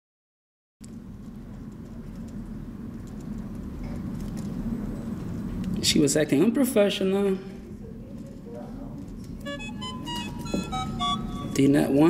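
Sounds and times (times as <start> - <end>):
low room rumble: 0.8 - 12.0.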